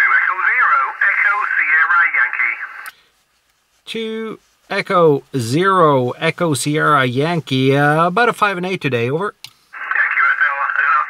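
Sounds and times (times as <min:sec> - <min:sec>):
thin radio speech: 0:00.0 - 0:02.8, 0:09.8 - 0:11.0.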